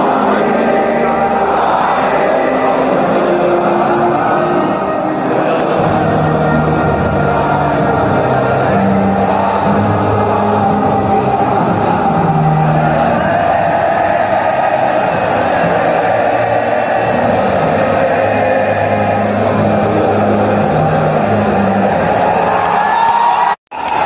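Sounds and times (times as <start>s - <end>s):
stadium crowd singing an anthem: 0.0s - 24.0s.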